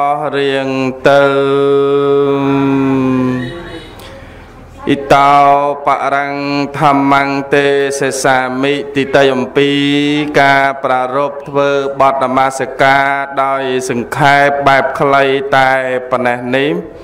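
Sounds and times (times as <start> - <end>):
man chanting into a microphone: 0.0 - 3.7, 4.8 - 17.0.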